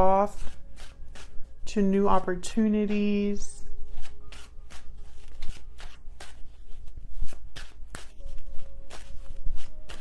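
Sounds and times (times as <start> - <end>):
cards being shuffled: 0.3 - 1.4, 3.7 - 10.0.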